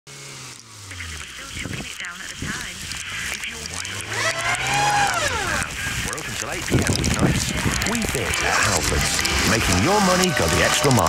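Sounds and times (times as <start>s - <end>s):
sliding pitched tone: 0.5s - 11.0s
radio advert: 0.7s - 11.0s.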